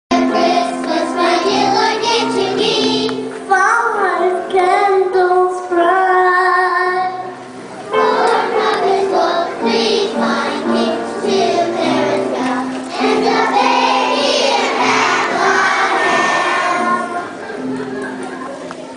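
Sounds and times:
children singing together: 0.1 - 5.9, 7.9 - 17.7
single child singing: 0.2 - 7.3, 7.9 - 17.4.

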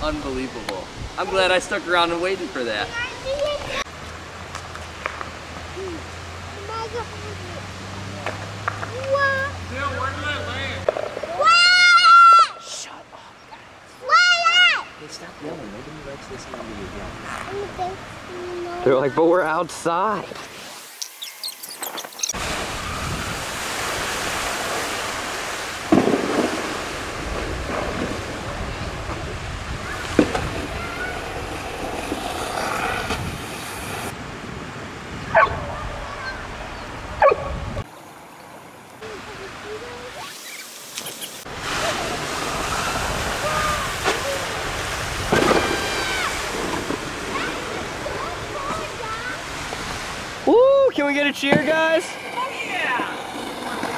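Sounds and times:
water rushing down a spillway: 4.9 - 12.5, 22.3 - 34.1, 39.0 - 53.9
dog barking: 35.3 - 35.8, 37.2 - 37.6
person yelling: 50.4 - 51.0.

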